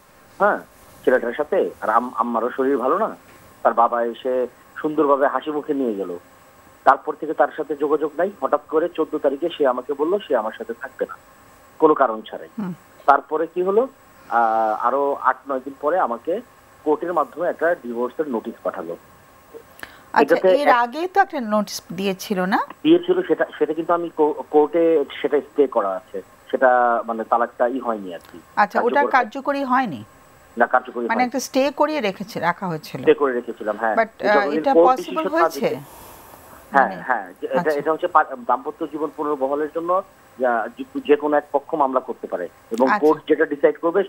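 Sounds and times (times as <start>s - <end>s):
man talking over telephone: 22.9s - 29.3s, 30.6s - 31.3s, 33.0s - 35.8s, 36.7s - 44.0s
person talking over telephone: 28.3s - 29.3s, 33.6s - 35.8s, 36.7s - 38.0s, 42.7s - 43.3s.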